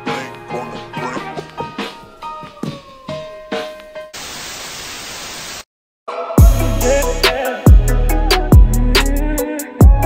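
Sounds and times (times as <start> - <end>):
tv static white noise: 4.2 - 5.7.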